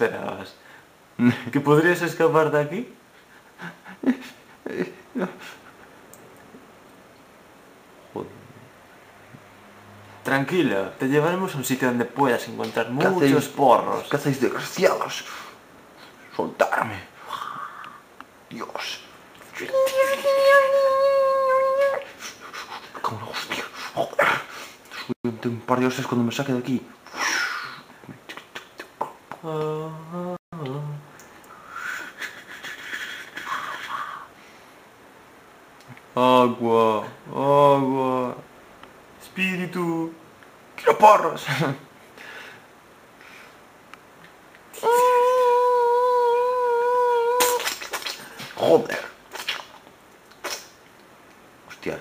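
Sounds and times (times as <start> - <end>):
person singing a long note: 29.4 - 31.1.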